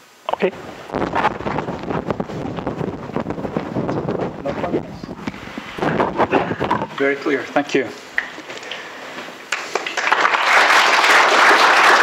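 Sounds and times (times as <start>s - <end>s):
clip-on microphone rustling: 0.9s - 7.1s.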